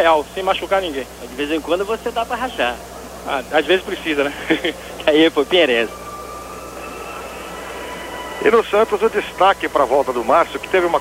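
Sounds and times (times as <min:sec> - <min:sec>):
television broadcast background noise: 0:00.0 - 0:11.0
faint high tones: 0:05.0 - 0:11.0.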